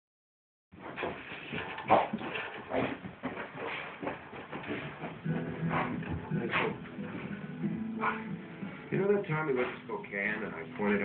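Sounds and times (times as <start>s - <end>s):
dog scrabbling on rug: 0.8s - 7.3s.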